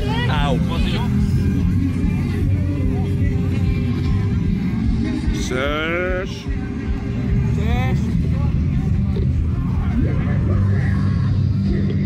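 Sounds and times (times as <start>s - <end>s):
faint voices: 0.0s - 12.0s
steady low rumble: 0.0s - 12.0s.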